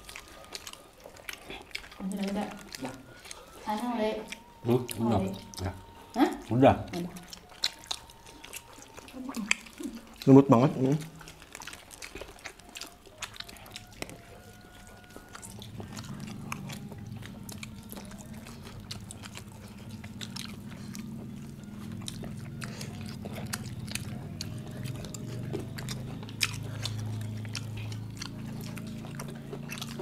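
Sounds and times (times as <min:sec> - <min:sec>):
low steady hum: 0:00.0 - 0:30.0
people chewing and lip-smacking: 0:00.0 - 0:30.0.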